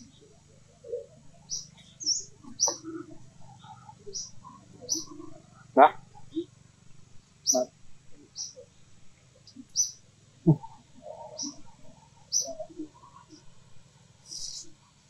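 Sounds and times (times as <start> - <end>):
birds chirping: 0.0 - 6.7, 7.3 - 14.8
low animal calls: 0.8 - 6.5, 7.5 - 8.6, 10.4 - 13.5.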